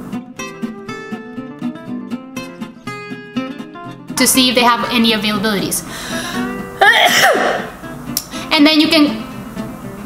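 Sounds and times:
acoustic guitar music: 0.0s - 10.0s
woman sneezing: 6.8s - 7.8s.

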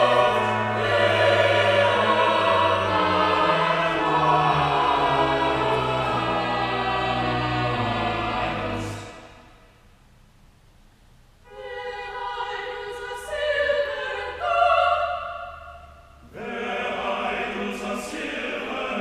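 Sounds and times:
church choir singing held chords: 0.0s - 9.7s, 11.5s - 19.0s.

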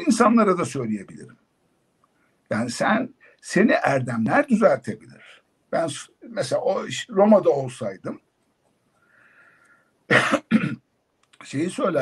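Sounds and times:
man coughing: 10.1s - 10.8s.

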